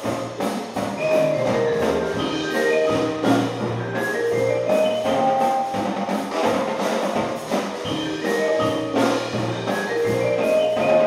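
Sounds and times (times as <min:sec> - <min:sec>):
regular drum strokes: 0:00.0 - 0:11.0
mallet keyboard runs: 0:00.8 - 0:06.5, 0:07.8 - 0:11.0.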